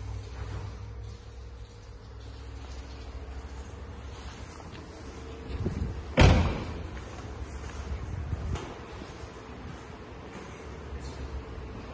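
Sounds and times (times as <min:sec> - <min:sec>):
car door slamming: 0:06.1 - 0:06.8.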